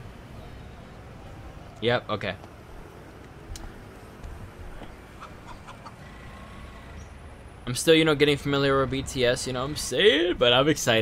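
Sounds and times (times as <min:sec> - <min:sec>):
chicken clucking: 0:05.1 - 0:06.1.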